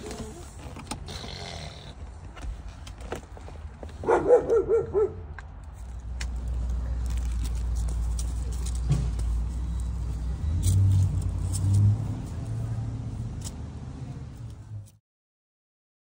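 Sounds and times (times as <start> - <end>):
dog yelping: 4.0 - 5.2.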